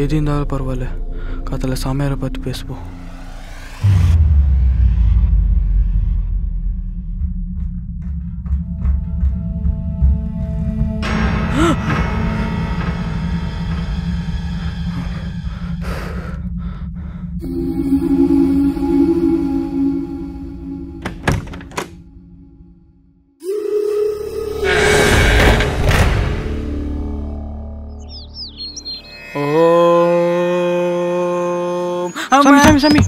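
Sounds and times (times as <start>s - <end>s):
low drone horror score: 0.0s - 32.3s
eerie music: 0.0s - 32.7s
bird chirping: 27.9s - 29.8s.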